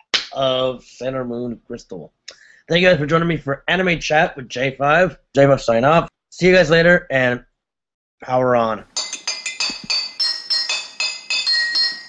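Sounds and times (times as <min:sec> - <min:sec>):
bell-like chime melody: 0:09.0 - 0:12.0.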